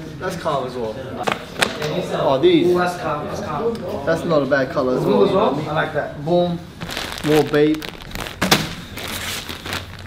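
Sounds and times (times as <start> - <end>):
plastic bag crinkling: 6.8 - 10.0.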